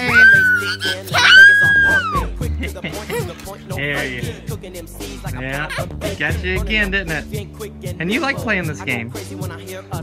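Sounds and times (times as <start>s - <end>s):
boy screaming: 0.0s - 2.3s
background music with steady beat: 0.0s - 10.0s.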